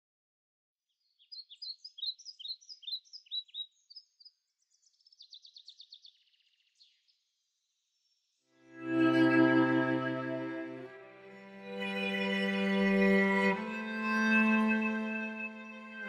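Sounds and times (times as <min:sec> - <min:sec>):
songbird chirping and trilling: 0:00.9 - 0:16.0.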